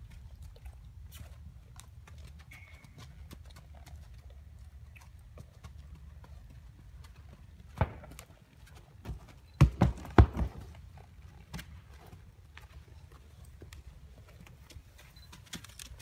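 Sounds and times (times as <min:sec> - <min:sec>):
hooves clip-clopping: 0:00.0 - 0:16.0.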